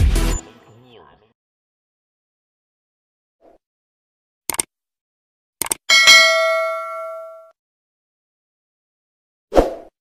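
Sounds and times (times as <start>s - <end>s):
notification bell ding: 5.9s - 7.5s.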